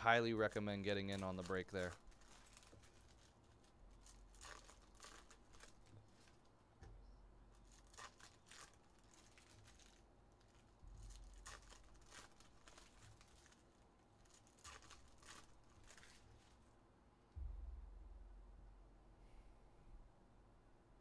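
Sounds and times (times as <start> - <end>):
trading cards rustling and flicking: 0.8 - 6.4, 7.6 - 16.7.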